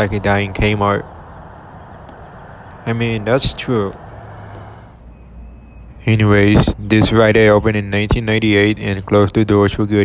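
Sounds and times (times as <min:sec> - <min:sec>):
distant road traffic rumble: 0:00.0 - 0:10.0.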